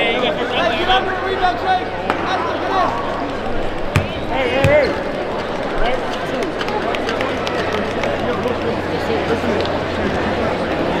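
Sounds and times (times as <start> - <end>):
crowd chatter: 0.0 - 11.0
basketball bouncing on hardwood: 4.0 - 5.1.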